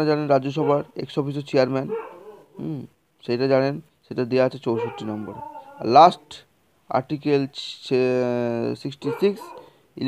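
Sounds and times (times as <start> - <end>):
person speaking: 0.0 - 10.0.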